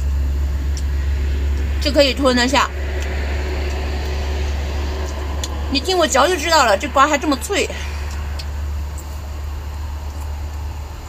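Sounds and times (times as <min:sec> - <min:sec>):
low machine hum: 0:00.0 - 0:11.0
woman speaking: 0:01.8 - 0:02.8, 0:05.7 - 0:08.3.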